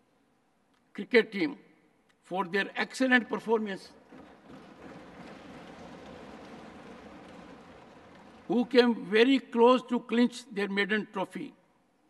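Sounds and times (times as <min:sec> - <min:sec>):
desk thumping applause: 0:03.3 - 0:09.1.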